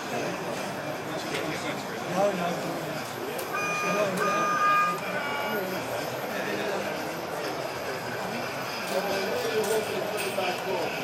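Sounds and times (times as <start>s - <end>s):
chatter of voices: 0.0s - 11.0s.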